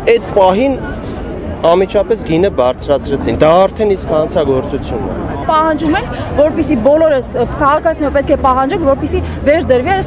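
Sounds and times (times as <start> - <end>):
man talking: 0.0 - 1.0, 1.6 - 5.3.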